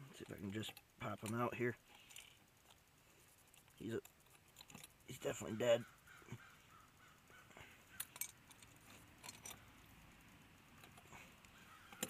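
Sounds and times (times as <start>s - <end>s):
metallic clinks of trap: 3.5s - 5.2s, 7.9s - 9.7s.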